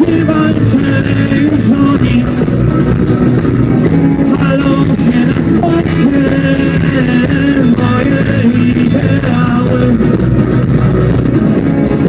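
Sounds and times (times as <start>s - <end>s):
acoustic guitar: 0.0s - 12.0s
hand drums: 0.0s - 12.0s
keyboard: 0.0s - 12.0s.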